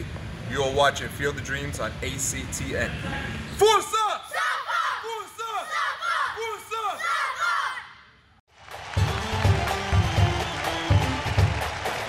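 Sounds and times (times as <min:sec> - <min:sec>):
boys chanting in unison: 0:04.3 - 0:08.0.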